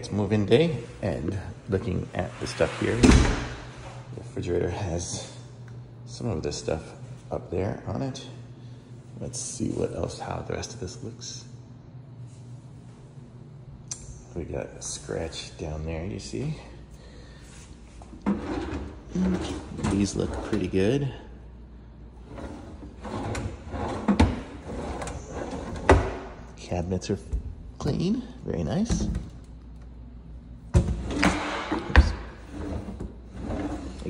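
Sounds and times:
drawer sliding open: 2.3s - 3.7s, 22.3s - 26.2s, 30.8s - 34.0s.

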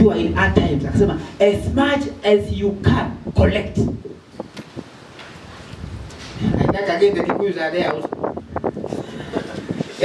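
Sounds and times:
low steady background noise: 0.0s - 10.0s.

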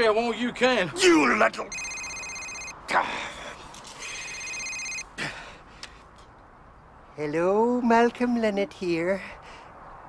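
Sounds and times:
mobile phone ringtone: 1.7s - 2.8s, 4.0s - 5.0s.

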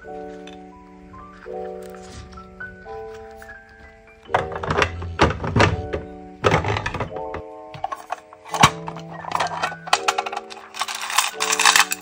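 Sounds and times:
soft background music: 0.0s - 12.0s
plastic drawer thunking shut: 4.3s - 7.4s.

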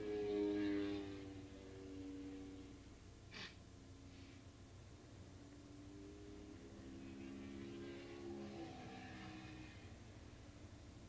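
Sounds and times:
distant racing motorcycle engines: 0.0s - 11.0s.

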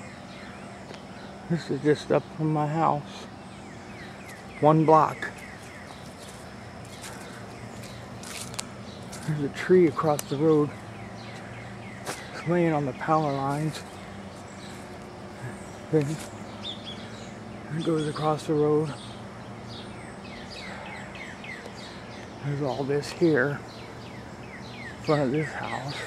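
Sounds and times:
outdoor background noise: 0.0s - 26.0s
footsteps on wet ground: 4.2s - 12.5s, 13.4s - 15.1s, 16.0s - 16.4s.

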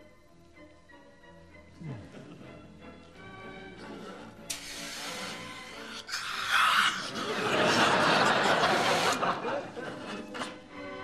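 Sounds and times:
music playing: 0.0s - 11.0s
suction hose hiss: 4.5s - 7.0s.

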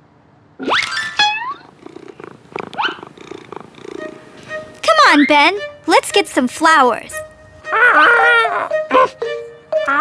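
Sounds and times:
cartoon cat purring: 1.4s - 4.1s.

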